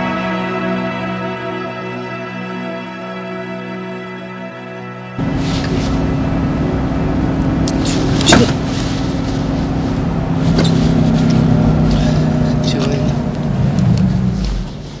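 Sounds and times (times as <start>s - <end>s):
car engine humming: 5.2s - 15.0s.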